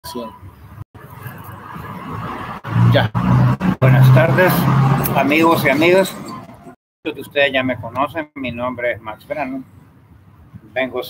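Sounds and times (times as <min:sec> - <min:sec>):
road traffic rumble: 0:00.1 - 0:11.0.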